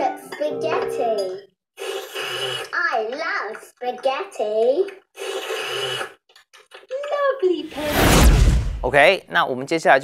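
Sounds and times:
cartoon spaghetti slurp: 1.8 - 2.8, 5.2 - 6.2.

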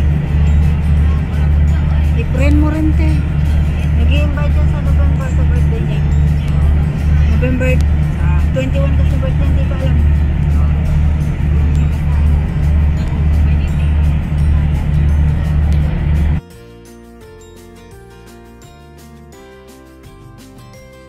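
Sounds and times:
ferry engines droning: 0.0 - 16.4
wind: 0.0 - 16.4
background music: 0.0 - 21.0.

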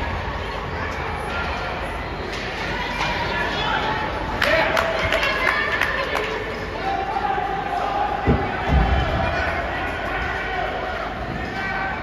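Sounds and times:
voices echoing in arena: 0.0 - 12.0.

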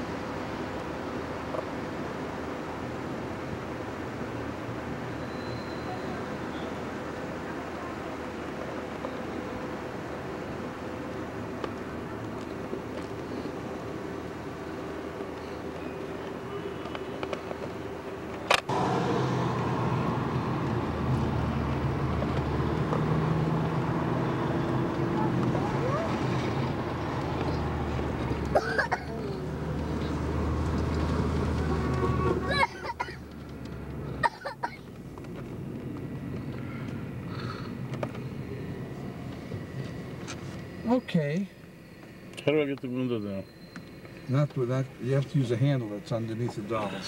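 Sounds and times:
car road and engine rumble: 0.0 - 47.0.

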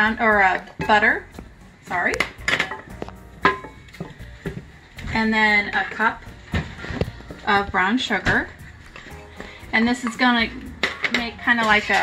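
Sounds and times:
knock against metal saucepan: 3.4 - 3.8.

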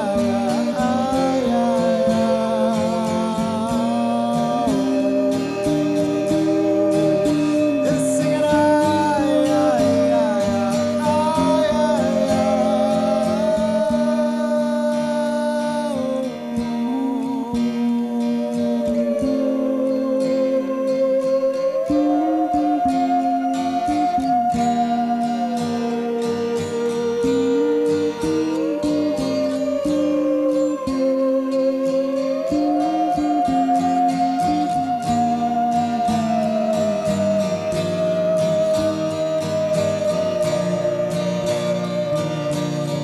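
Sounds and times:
man singing: 0.0 - 20.4
electric lead guitar: 0.0 - 43.0.

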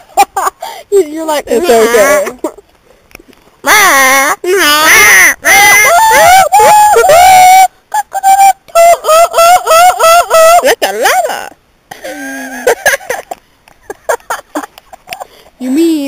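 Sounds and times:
girl hooting: 3.7 - 10.6
girl's wavering cries: 3.7 - 10.6.

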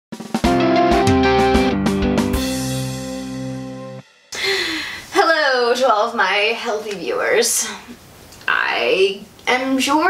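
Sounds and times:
woman breathing in: 4.3 - 5.1
woman talking: 5.1 - 10.0.

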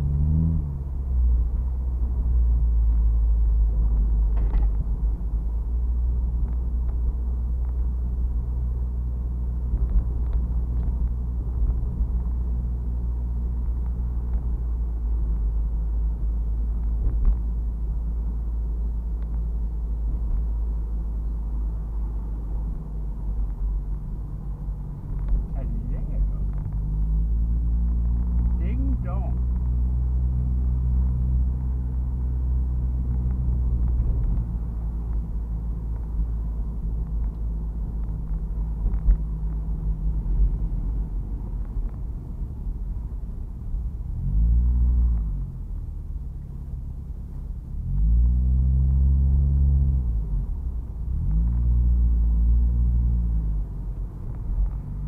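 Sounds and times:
car engine: 0.0 - 55.0
road rumble inside car: 0.0 - 55.0.

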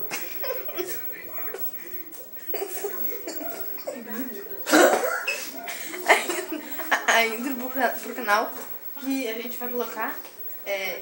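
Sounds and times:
unclear talk: 0.0 - 11.0.

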